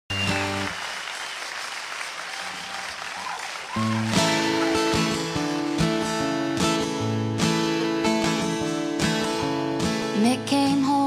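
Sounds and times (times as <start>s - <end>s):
acoustic guitar strumming: 0.1s - 0.8s, 3.8s - 11.0s
whistles from audience: 0.1s - 4.8s
audience applauding and cheering: 0.1s - 6.4s.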